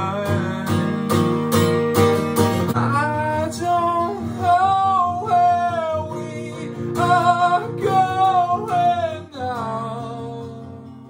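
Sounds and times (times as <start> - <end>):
acoustic guitar strum: 0.0 - 11.0
man singing high notes: 2.8 - 11.0.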